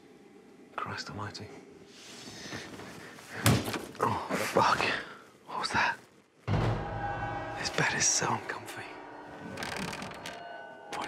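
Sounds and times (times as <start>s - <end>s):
eerie music with bell-like tones: 6.5s - 11.0s.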